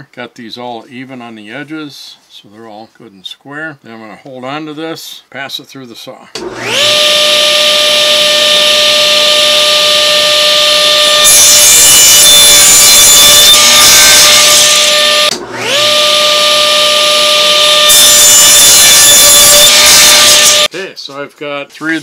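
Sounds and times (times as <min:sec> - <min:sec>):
saw cutting wooden boards: 0:06.4 - 0:20.7
table saw motor whine: 0:06.4 - 0:20.7.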